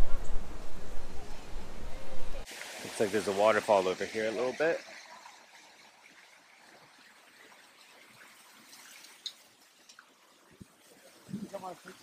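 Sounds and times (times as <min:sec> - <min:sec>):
waterfall and stream trickling: 0:02.4 - 0:12.0.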